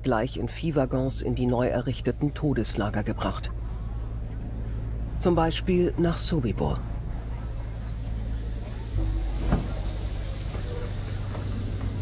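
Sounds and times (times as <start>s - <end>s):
freight train rumbling: 3.6s - 12.0s.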